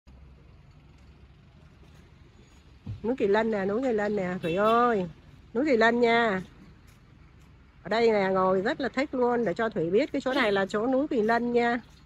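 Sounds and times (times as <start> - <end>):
faint low outdoor rumble: 0.1 - 12.0.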